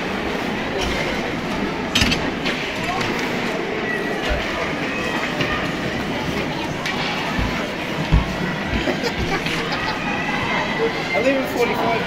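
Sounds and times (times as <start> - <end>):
arena noise: 0.0 - 12.0.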